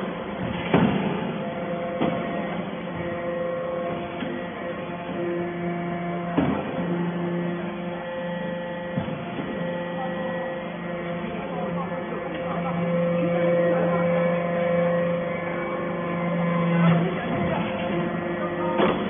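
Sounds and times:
press machine hum: 0.0s - 19.0s.

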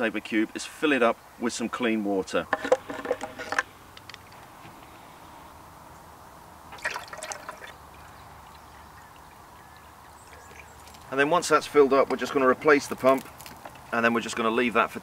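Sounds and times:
water trickling into container: 6.7s - 11.2s.

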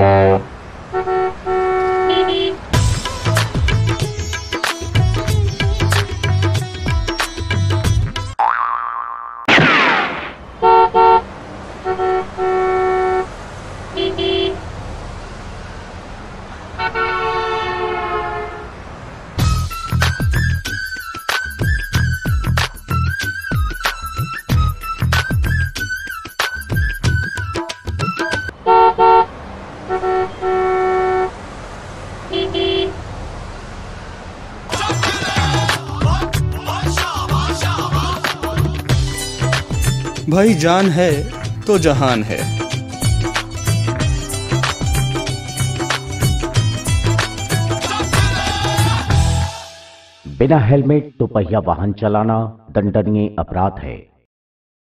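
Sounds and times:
vehicle horns honking: 0.0s - 2.7s, 10.6s - 14.7s, 16.8s - 18.8s, 28.5s - 31.4s, 32.3s - 33.0s
steady traffic noise: 0.0s - 6.0s, 9.6s - 20.2s, 28.1s - 35.9s.

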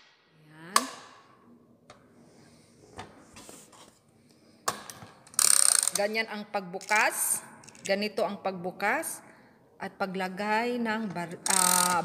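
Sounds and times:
ratcheting rasp of rifle mechanism: 5.3s - 6.0s, 11.5s - 12.0s.

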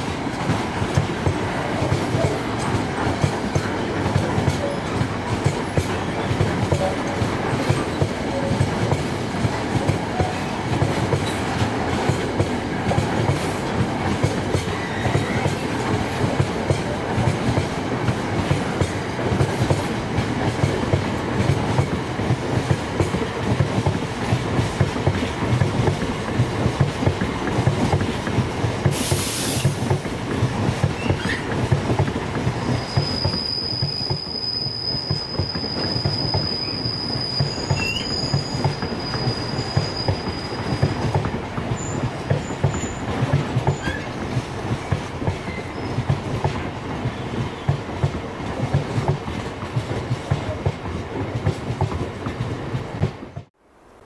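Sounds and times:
train wheels clattering over rails: 0.0s - 53.5s
brief hiss: 28.9s - 29.8s
high-pitched wheel squeal: 32.6s - 41.0s.

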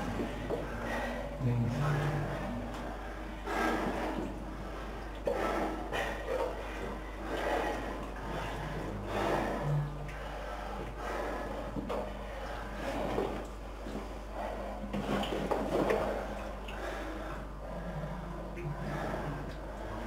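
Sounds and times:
person breathing heavily: 0.0s - 15.2s, 16.0s - 20.0s
steady low hum: 0.0s - 20.0s.

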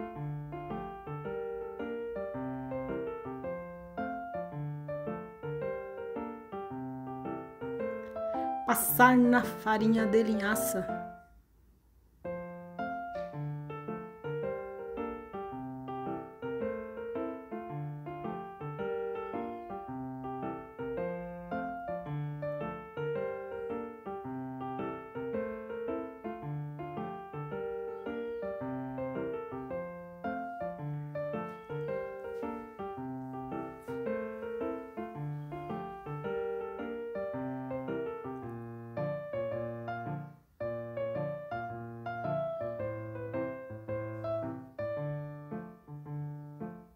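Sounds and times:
background piano music: 0.0s - 11.4s, 12.2s - 46.9s.

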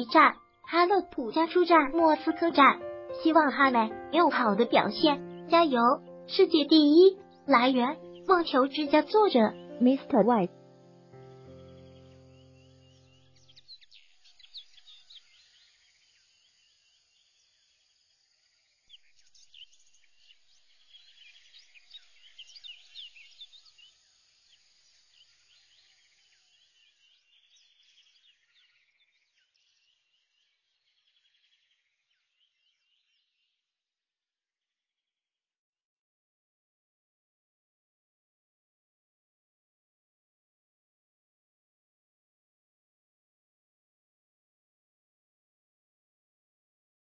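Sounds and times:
birds chirping: 0.0s - 10.6s, 11.3s - 15.8s.

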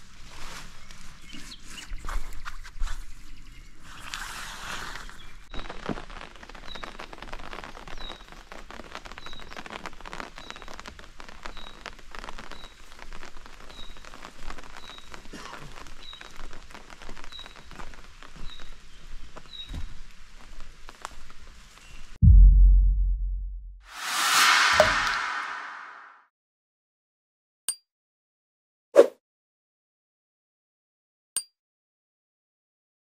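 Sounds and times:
rain pattering on tent: 5.0s - 22.2s
loud deep boom: 22.2s - 26.1s.

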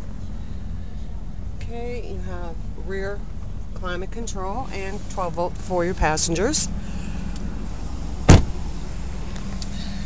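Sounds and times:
steady low hum: 0.0s - 10.0s
vehicle door shutting: 8.2s - 8.7s.

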